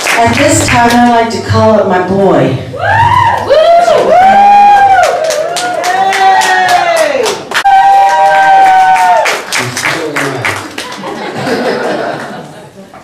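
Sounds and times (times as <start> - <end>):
scattered clapping: 0.0 - 1.1, 5.0 - 11.3.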